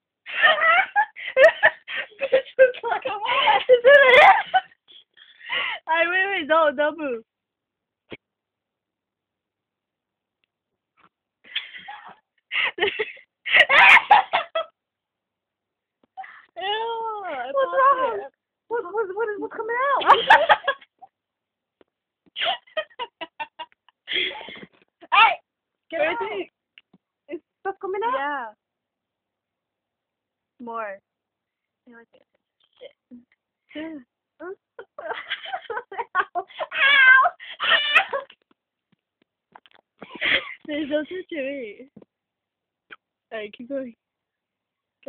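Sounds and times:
girl giggling: 0.3 - 4.8, 11.6 - 14.7, 20.0 - 21.0, 22.4 - 25.2, 34.4 - 38.4
girl squealing: 13.6 - 14.3, 36.6 - 38.3.

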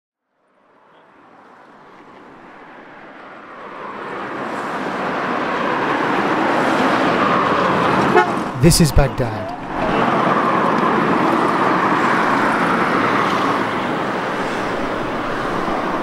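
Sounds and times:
street traffic noise: 0.2 - 16.0.

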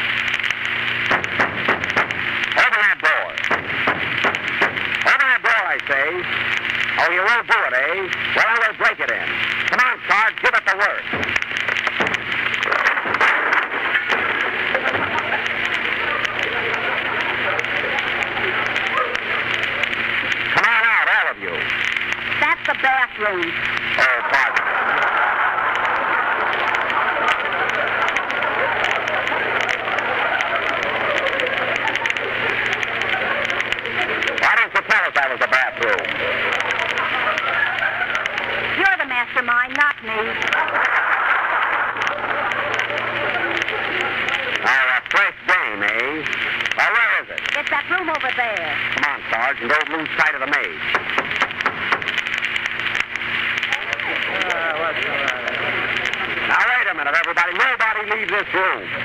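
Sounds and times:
audience laughing and applauding: 11.8 - 21.3, 23.9 - 39.0, 40.1 - 48.6, 50.6 - 59.0.

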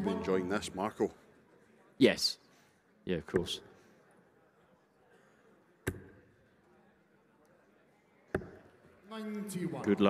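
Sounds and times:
faint arena background noise: 0.0 - 10.0.

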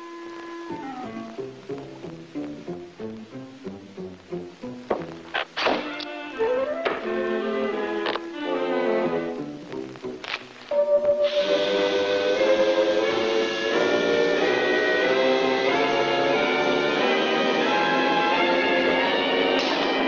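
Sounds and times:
orchestral cartoon music: 0.6 - 20.0.

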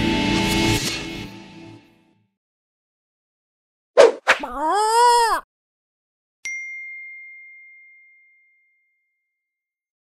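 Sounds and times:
high pure chime ding: 6.4 - 9.0.

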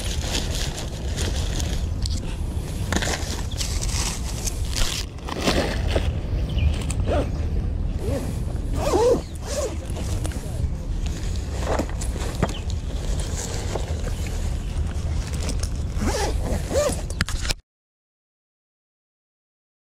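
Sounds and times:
plastic bags rustling: 0.0 - 2.1, 2.7 - 6.4
low microphone rumble: 0.0 - 17.2
zipper zipping: 6.8 - 7.4, 8.0 - 10.2, 15.2 - 17.2.

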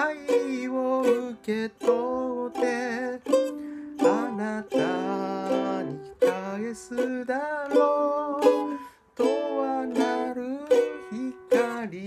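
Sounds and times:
ukulele playing: 0.0 - 12.0.

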